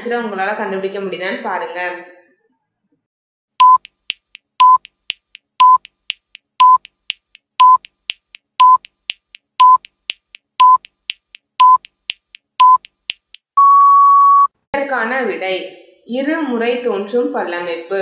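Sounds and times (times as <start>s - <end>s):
short electronic beeps: 3.6s - 4.0s, 4.6s - 4.9s, 5.6s - 5.9s, 6.6s - 6.9s, 7.6s - 7.9s, 8.6s - 8.9s, 9.6s - 9.9s, 10.6s - 10.9s, 11.6s - 11.9s, 12.6s - 12.9s, 13.6s - 14.5s
longer higher beep: 13.6s - 14.5s.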